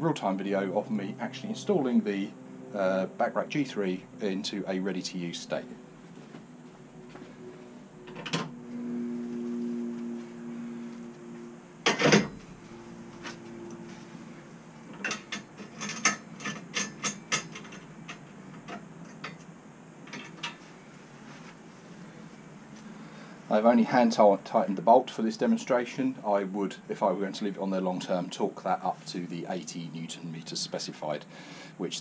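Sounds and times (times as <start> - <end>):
low steady tone: 6.8 - 24.5
metal clanks and clicks: 14.9 - 19.5.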